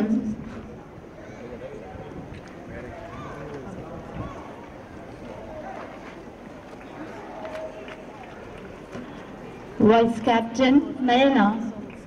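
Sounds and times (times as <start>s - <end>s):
people talking: 9.8s - 11.9s.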